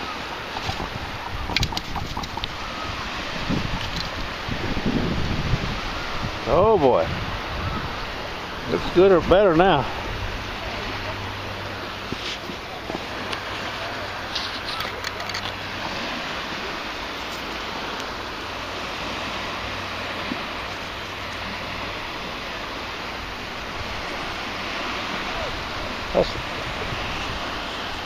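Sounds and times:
surf rushing on shore: 0:00.0 - 0:28.0
wind: 0:00.0 - 0:28.0.

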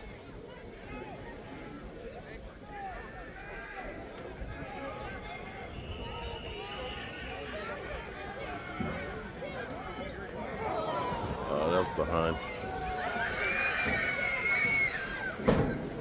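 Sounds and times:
indistinct background chatter: 0:00.0 - 0:16.0.

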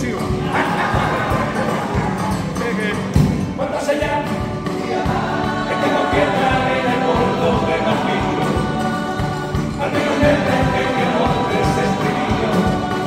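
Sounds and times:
guitars: 0:00.0 - 0:13.0
steady beat: 0:00.0 - 0:13.0
male choir singing in harmony: 0:00.3 - 0:02.6, 0:03.9 - 0:13.0.

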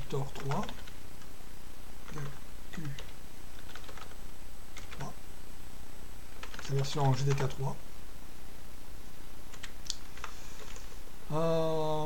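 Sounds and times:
steady low hum: 0:00.0 - 0:12.0
computer keyboard keystrokes: 0:03.0 - 0:04.2, 0:06.4 - 0:07.5.

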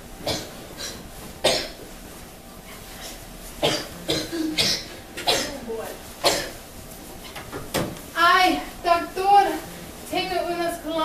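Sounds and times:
person coughing: 0:03.6 - 0:05.6, 0:06.2 - 0:06.6.

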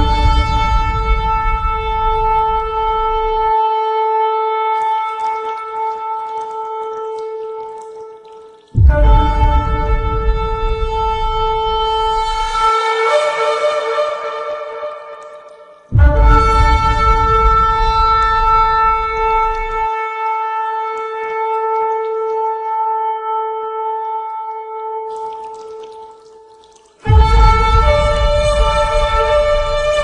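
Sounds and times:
long horn note: 0:00.0 - 0:03.5, 0:27.1 - 0:30.0
deep rumble: 0:00.0 - 0:03.6, 0:08.8 - 0:12.6, 0:15.9 - 0:19.8, 0:27.1 - 0:30.0.

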